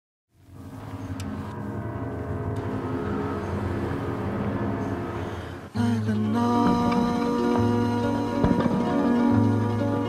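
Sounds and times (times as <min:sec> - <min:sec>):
low drone: 0:00.4 - 0:10.0.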